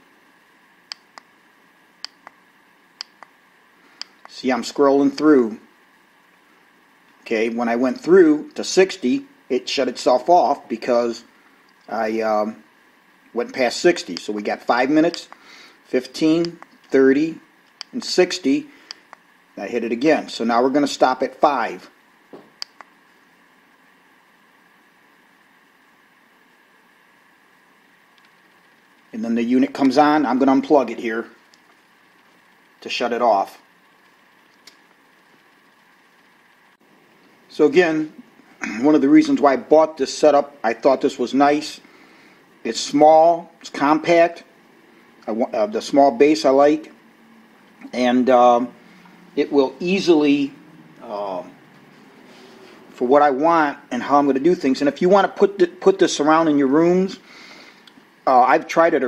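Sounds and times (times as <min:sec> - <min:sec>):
faint room hiss: 0:00.0 - 0:59.0
light clicks: 0:00.9 - 0:01.3, 0:22.6 - 0:22.9.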